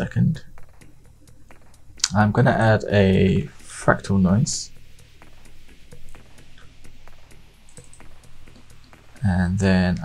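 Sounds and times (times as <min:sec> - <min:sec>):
low steady hum: 0:00.0 - 0:10.0
keyboard keys clicking: 0:07.7 - 0:08.7.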